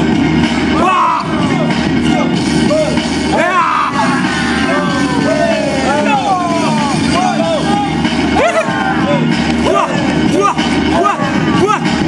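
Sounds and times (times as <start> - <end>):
young men shouting excitedly: 0.7 - 12.0.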